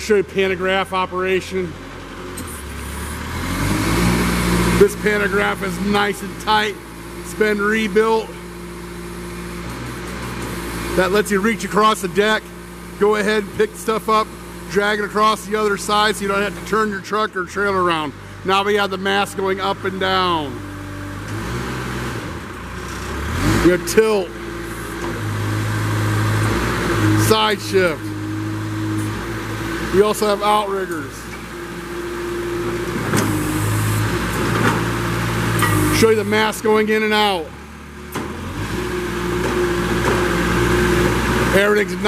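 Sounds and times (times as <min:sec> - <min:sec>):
forklift engine running: 0:00.0 - 0:42.0.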